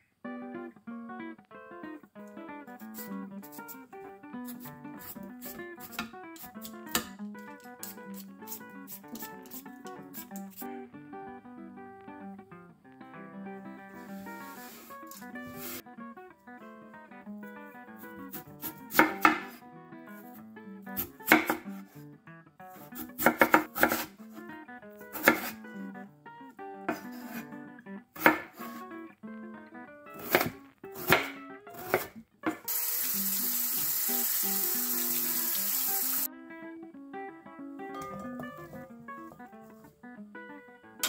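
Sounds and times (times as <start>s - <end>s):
knife chopping potatoes on wooden board: 5.4s - 7.1s, 18.3s - 19.6s, 21.0s - 21.8s, 22.9s - 24.1s, 25.1s - 25.6s, 26.9s - 27.4s, 28.2s - 28.8s, 30.2s - 32.7s.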